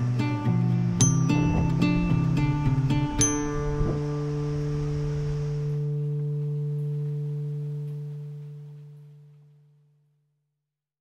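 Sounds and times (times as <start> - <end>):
soundtrack music low sustained note: 0.0 - 10.2.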